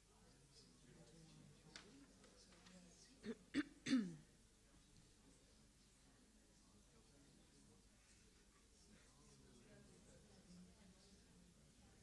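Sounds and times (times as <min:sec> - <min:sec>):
person clearing throat: 0:03.2 - 0:04.2.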